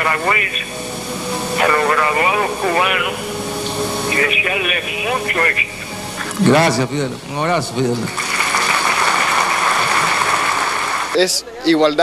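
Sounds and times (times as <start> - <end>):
audience applauding: 7.8 - 11.4.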